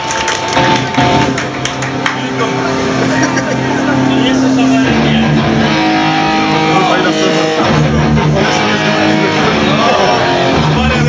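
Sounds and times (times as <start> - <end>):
amplified electric guitar notes: 0.0 - 11.0.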